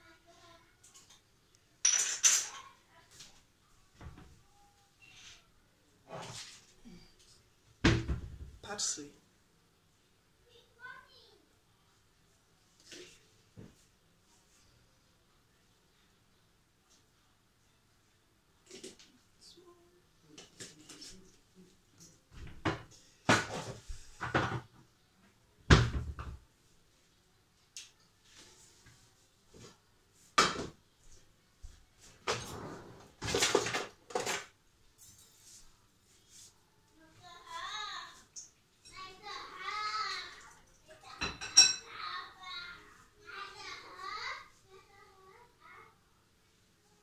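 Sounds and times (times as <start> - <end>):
cupboard door knocks and bangs: 7.8 - 8.6.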